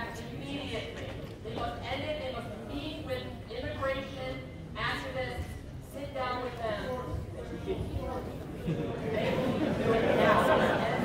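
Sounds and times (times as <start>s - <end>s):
audience chatter: 0.0s - 11.0s.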